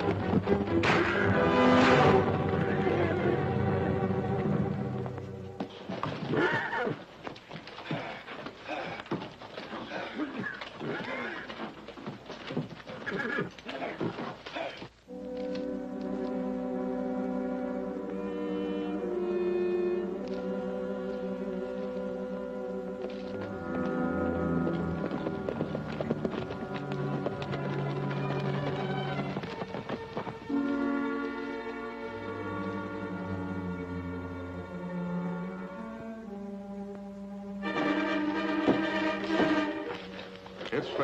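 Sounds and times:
orchestral film music: 0:00.0 - 0:06.9, 0:15.0 - 0:41.0
hooves knocking: 0:00.0 - 0:16.2, 0:22.8 - 0:32.8, 0:36.9 - 0:41.0
horses' hoofbeats clattering: 0:00.0 - 0:16.4, 0:22.9 - 0:33.9, 0:37.6 - 0:41.0
horse whinnying: 0:05.8 - 0:14.9.

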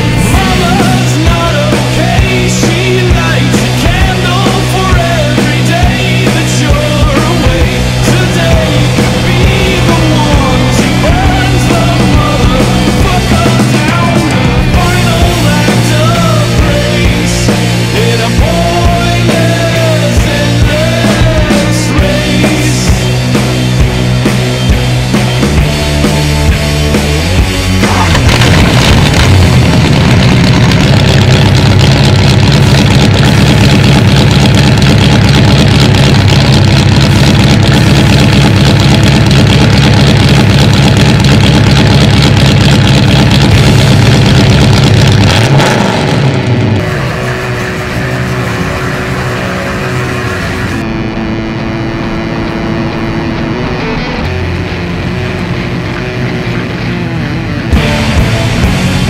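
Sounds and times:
car engine running: 0:00.0 - 0:59.0
music: 0:00.0 - 0:59.0.

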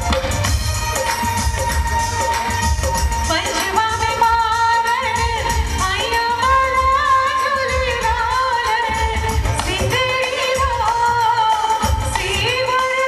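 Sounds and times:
recorded backing music: 0:00.0 - 0:13.0
woman singing into a microphone: 0:03.1 - 0:13.0.

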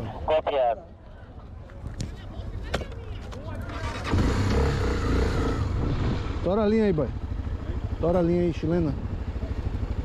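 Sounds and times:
motorcycle engine pulling away: 0:03.7 - 0:10.0.

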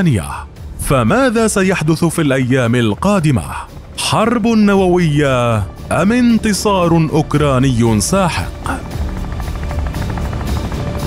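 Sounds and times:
background music: 0:00.0 - 0:11.0
helicopter rotor beating: 0:00.0 - 0:11.0.

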